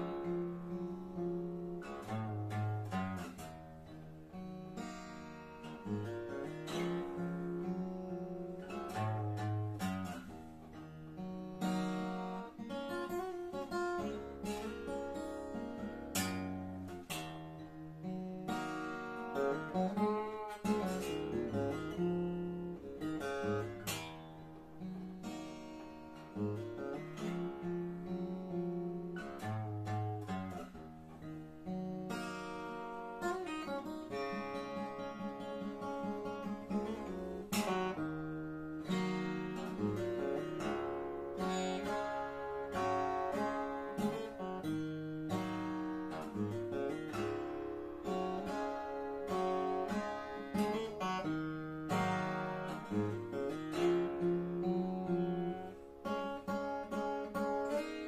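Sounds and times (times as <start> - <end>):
acoustic guitar played solo: 0.0 - 58.0.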